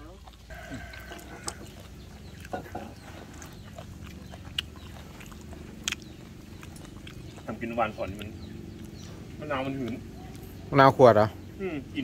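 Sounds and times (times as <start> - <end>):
chewing: 0.0 - 10.8.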